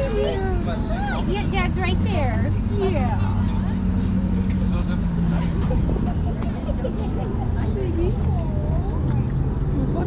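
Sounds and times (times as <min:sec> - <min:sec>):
diesel engine idling: 0:00.0 - 0:10.0
people talking: 0:00.0 - 0:10.0.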